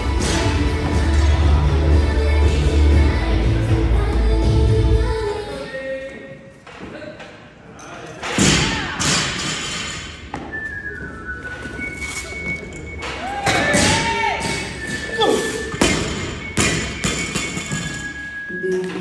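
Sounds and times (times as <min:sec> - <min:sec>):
music playing: 0:00.0 - 0:05.5.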